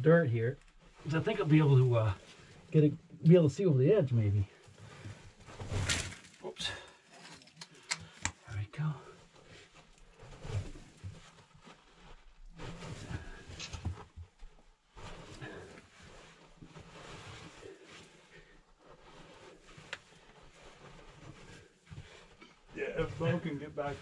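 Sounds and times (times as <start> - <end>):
clothing rustling against rock: 0.6 - 2.8, 4.5 - 24.0.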